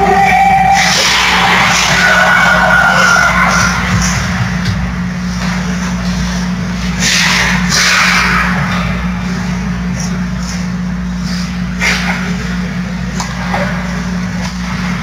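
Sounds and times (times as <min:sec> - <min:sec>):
low hum: 0:00.0 - 0:15.0.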